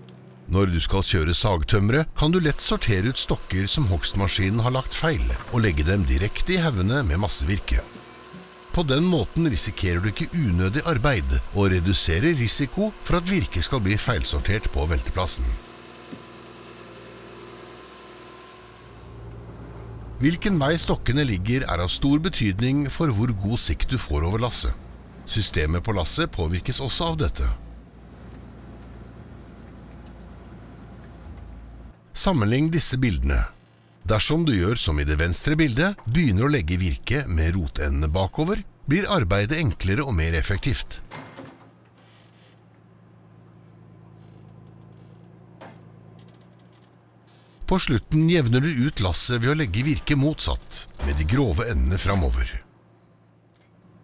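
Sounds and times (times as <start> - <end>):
diesel engine and hydraulics humming: 0.0 - 54.0
crane hydraulics: 2.8 - 22.8.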